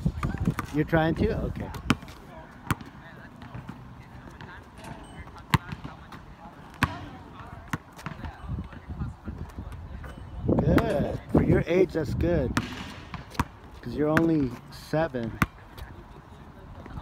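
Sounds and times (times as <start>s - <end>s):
basketball bouncing on asphalt: 0.0s - 11.6s, 12.4s - 17.0s.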